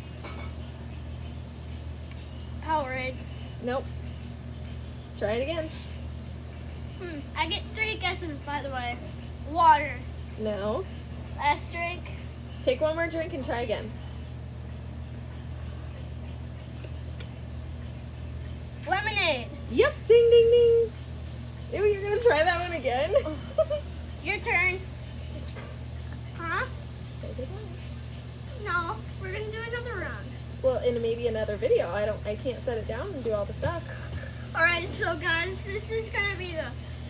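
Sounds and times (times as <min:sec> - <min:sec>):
low room tone hum: 0:00.0 - 0:37.0.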